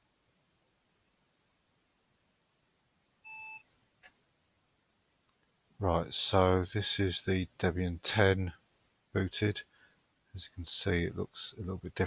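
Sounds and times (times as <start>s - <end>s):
short electronic beep: 3.3s - 3.6s.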